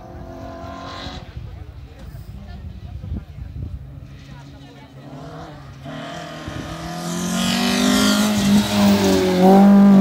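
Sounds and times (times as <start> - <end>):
distant rally car engine: 0.0 - 2.1, 3.9 - 10.0.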